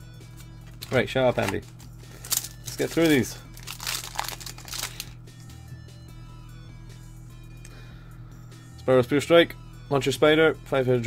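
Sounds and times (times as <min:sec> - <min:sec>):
quiet background music: 0:00.0 - 0:11.0
foil wrapper crinkling: 0:00.6 - 0:05.2.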